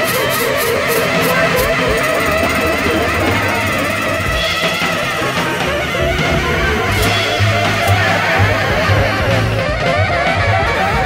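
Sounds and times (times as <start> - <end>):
electric guitar: 0.0 - 11.0
electric piano: 0.0 - 11.0
psychedelic jazz band: 0.0 - 11.0
synthesizer: 0.0 - 11.0
low bass line: 0.7 - 11.0.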